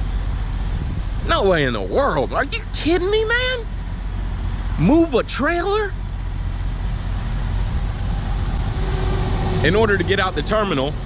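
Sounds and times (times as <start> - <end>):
road traffic rushing: 0.0 - 11.0
low hum: 3.6 - 11.0.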